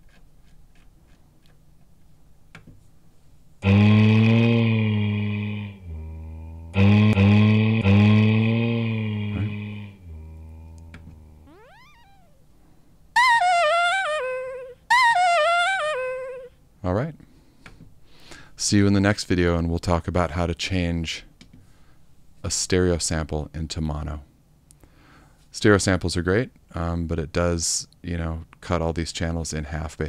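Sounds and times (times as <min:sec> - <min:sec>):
deep pitched-down vocal notes: 0:03.6 - 0:12.3
high wavering vocal notes: 0:03.6 - 0:12.6, 0:13.2 - 0:16.6.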